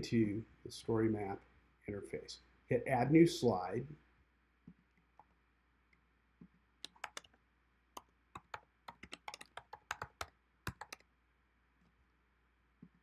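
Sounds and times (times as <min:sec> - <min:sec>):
typing on computer keyboard: 0:06.8 - 0:07.4, 0:08.4 - 0:11.0.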